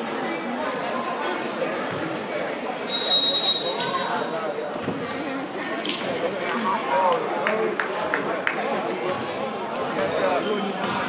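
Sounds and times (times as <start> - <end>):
crowd chatter: 0.0 - 11.0
referee's whistle blast: 2.9 - 4.3.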